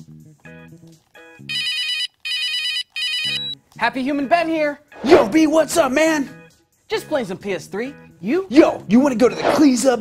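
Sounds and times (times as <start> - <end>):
phone ringing electronic trill: 1.5 - 3.6.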